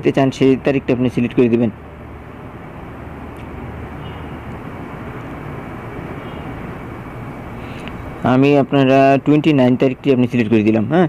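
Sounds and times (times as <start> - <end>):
steady rumble and hiss: 0.0 - 11.0.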